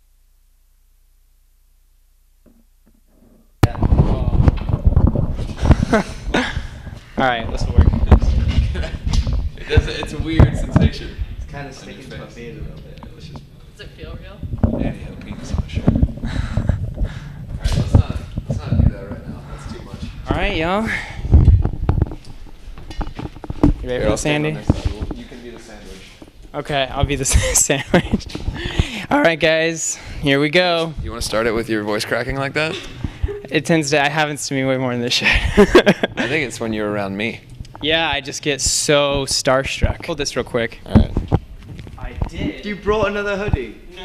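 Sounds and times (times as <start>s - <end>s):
low hum: 0.0s - 29.0s
microphone handling clicks and knocks: 2.4s - 11.5s, 12.7s - 13.7s, 14.4s - 29.0s, 39.1s - 43.7s
microphone handling thumps: 2.4s - 11.9s, 12.6s - 29.1s, 37.5s - 44.0s.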